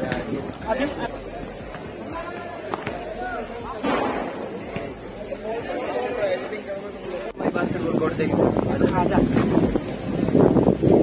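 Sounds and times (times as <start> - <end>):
indistinct chatter: 0.0 - 10.8.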